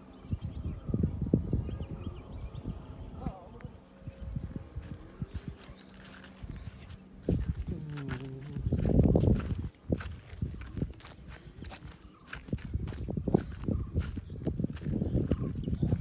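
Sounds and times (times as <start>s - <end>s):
person speaking: 6.6s - 9.4s.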